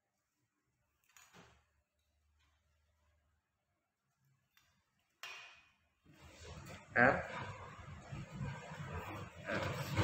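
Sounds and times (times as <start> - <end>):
bike parts rustling and clattering: 0.8 - 2.8.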